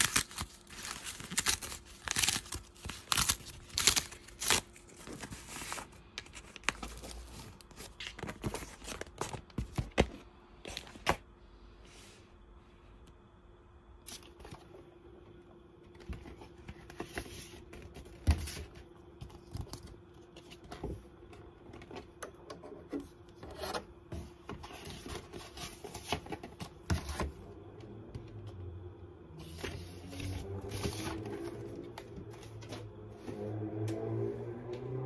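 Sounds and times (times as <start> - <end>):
record sleeves handled: 0.0 - 11.2
faint steady hum: 0.0 - 35.0.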